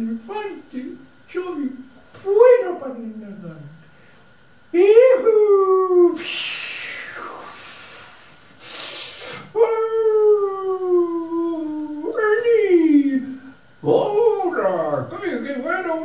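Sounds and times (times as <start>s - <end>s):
person crying in wailing howls: 9.6s - 12.2s.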